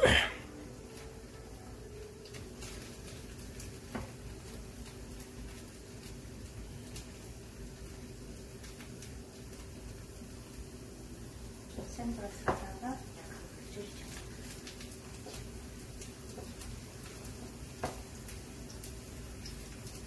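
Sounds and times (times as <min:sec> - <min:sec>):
pancakes sizzling in oil: 0:00.0 - 0:20.0
faint crackles: 0:00.1 - 0:20.0.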